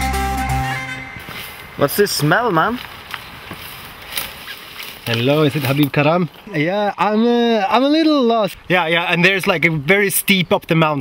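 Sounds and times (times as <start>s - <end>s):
footsteps rustling through grass: 1.1s - 6.5s.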